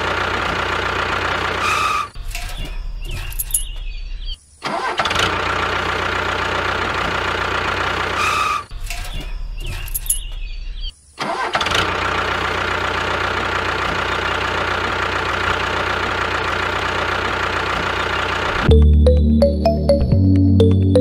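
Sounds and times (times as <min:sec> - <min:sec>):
tractor engine running: 0:00.0 - 0:04.0, 0:04.8 - 0:10.6, 0:11.4 - 0:21.0.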